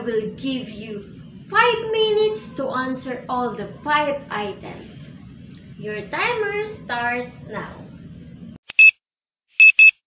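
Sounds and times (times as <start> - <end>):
digital timer beeping: 9.6 - 10.0.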